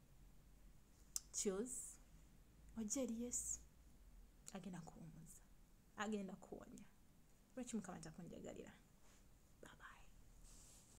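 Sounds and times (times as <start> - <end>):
woman whispering: 4.5 - 7.0, 9.6 - 10.2.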